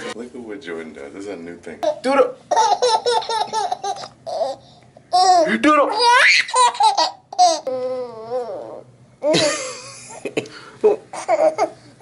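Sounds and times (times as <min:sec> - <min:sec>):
baby laughing and squealing: 0:01.9 - 0:09.5.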